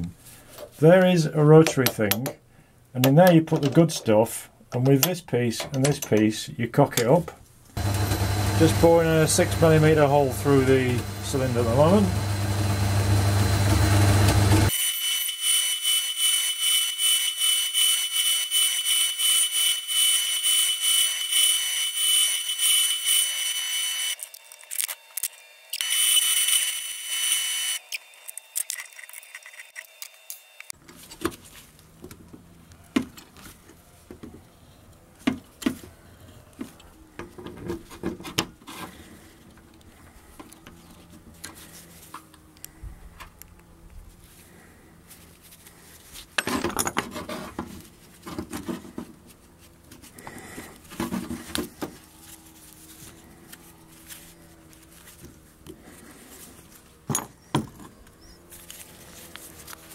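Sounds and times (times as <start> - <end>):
metal lathe whining: 7.8 - 30.7
small metal parts clicking: 24.2 - 26.8, 27.8 - 30.7.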